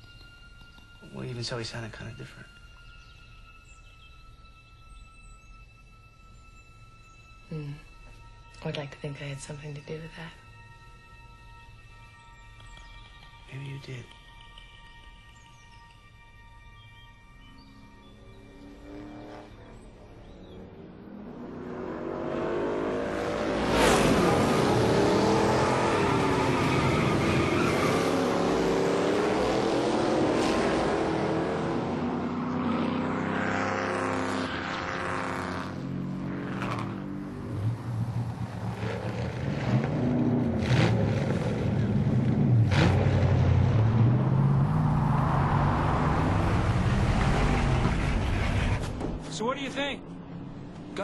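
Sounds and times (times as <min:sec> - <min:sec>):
car engine revving: 0:17.8 - 0:49.2.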